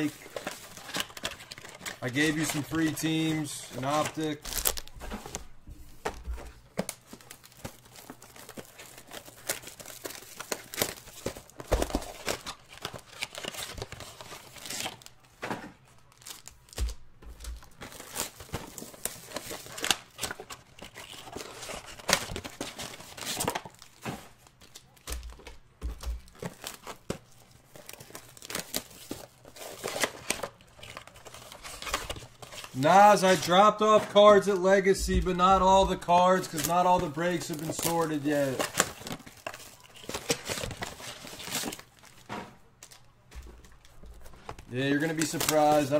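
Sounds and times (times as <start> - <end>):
foil wrappers crinkling and tearing: 0.0 - 5.5, 6.1 - 45.9.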